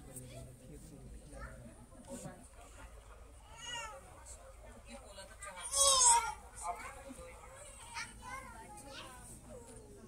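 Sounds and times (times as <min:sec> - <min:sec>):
faint background chatter: 0:00.0 - 0:10.0.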